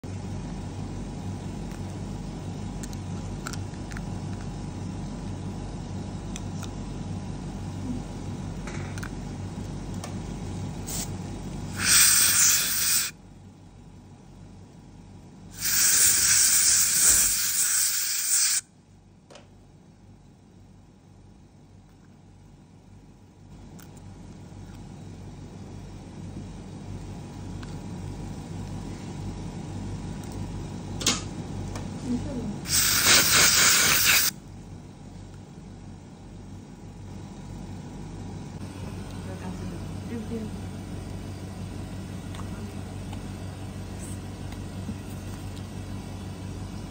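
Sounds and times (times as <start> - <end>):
low mechanical hum: 0.0 - 46.9
air syringe hissing: 10.8 - 11.1, 11.7 - 13.2, 15.5 - 18.7, 32.7 - 34.4.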